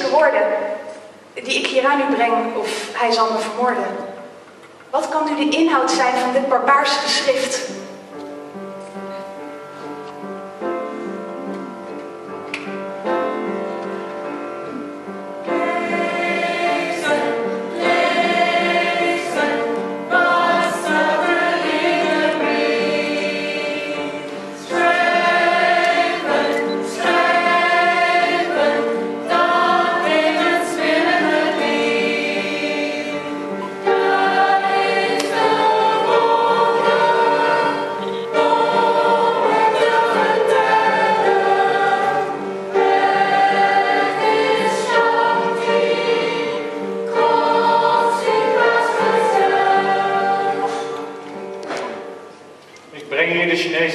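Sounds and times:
piano accompaniment: 0.0s - 53.9s
mixed choir singing: 15.4s - 52.2s.

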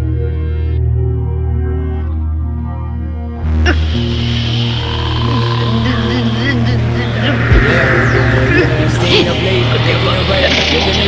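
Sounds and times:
low drone: 1.3s - 11.0s
wavering wailing tone: 3.8s - 10.7s.

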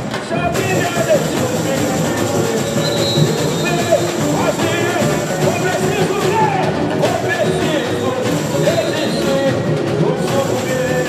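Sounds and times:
chorus singing: 0.0s - 11.0s
samba drum section: 0.0s - 11.0s
high held tone: 0.6s - 11.0s.

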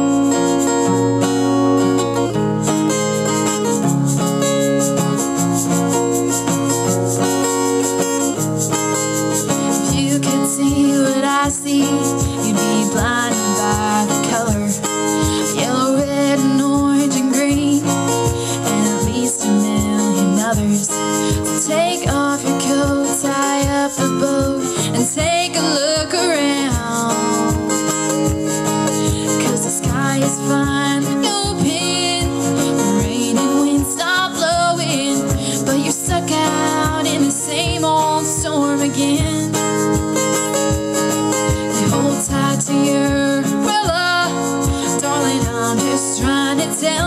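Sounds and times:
acoustic guitar strumming: 0.0s - 47.0s
woman singing: 4.4s - 47.0s.

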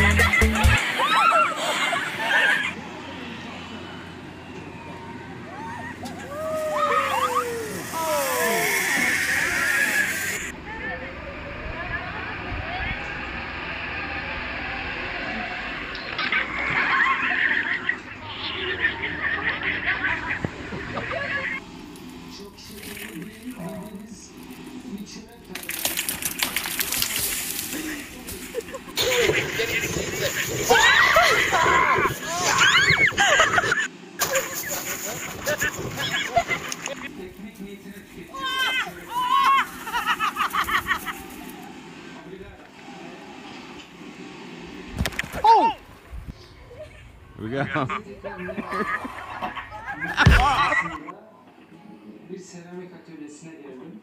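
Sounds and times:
people shrieking and laughing: 0.0s - 10.5s, 11.8s - 21.6s, 27.0s - 37.1s, 38.3s - 41.9s, 46.6s - 51.1s
steady background hiss: 1.8s - 11.9s
child laughing: 28.5s - 34.6s, 38.6s - 41.4s.

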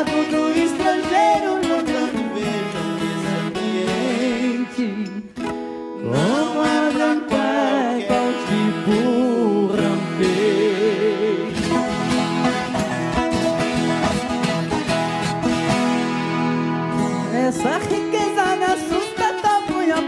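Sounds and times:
person singing: 0.0s - 5.4s, 6.0s - 11.9s, 17.0s - 20.0s
acoustic strings plucked and strummed: 0.0s - 20.0s.

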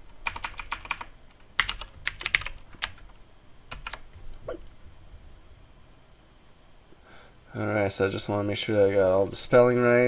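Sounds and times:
computer keyboard typing: 0.2s - 4.0s.

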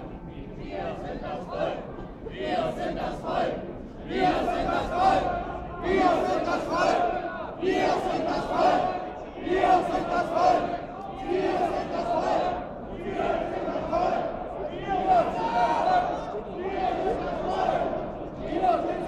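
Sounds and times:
crowd chanting in unison: 0.0s - 19.0s.

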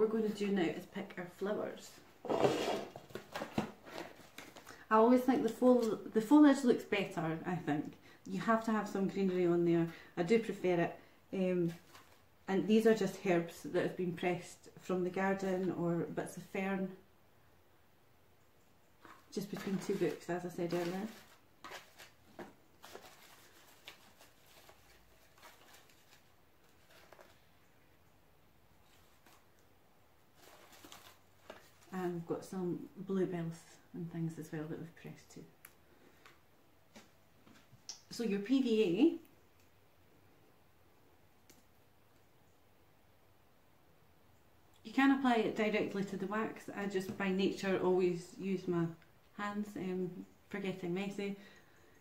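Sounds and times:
soft crackles: 10.9s - 13.2s, 18.9s - 32.9s
rustling of dried flowers: 19.0s - 27.5s, 30.2s - 32.3s.

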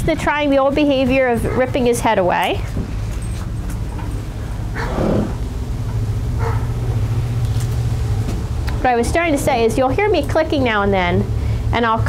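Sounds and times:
steady low hum: 0.0s - 12.0s
horse blowing through nostrils: 4.7s - 5.4s.

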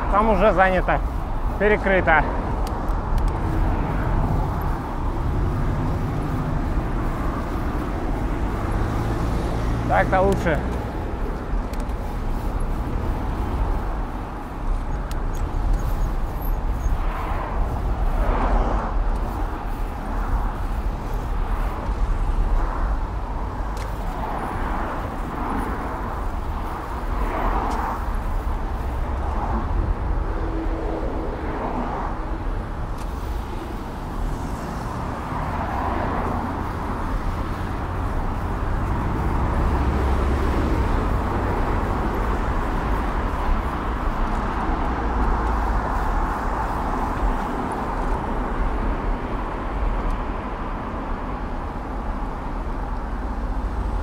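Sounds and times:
car traffic: 0.0s - 54.0s.

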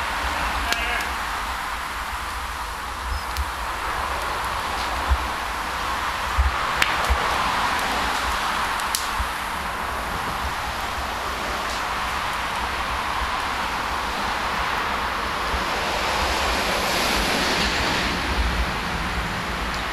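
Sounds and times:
wind buffeting microphone: 0.0s - 19.9s.

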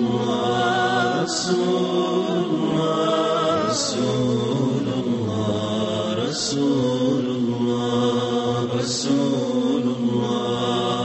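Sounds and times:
voices chanting long held notes: 0.0s - 11.0s.

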